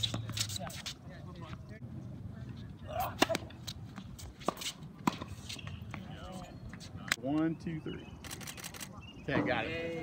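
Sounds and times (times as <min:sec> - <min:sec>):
tennis ball struck by rackets: 0:03.0 - 0:05.7
tennis ball bouncing: 0:03.2 - 0:06.0.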